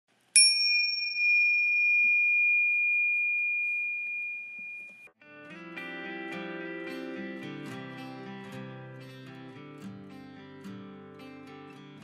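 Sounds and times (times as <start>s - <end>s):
bright bell-like chime: 0.4s - 5.2s.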